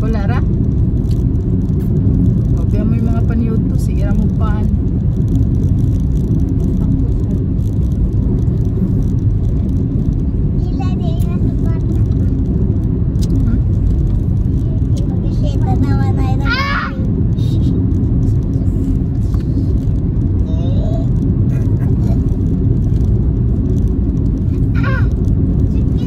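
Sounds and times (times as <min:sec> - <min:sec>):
car road and engine rumble: 0:00.0 - 0:26.0
children's voices: 0:14.6 - 0:17.1.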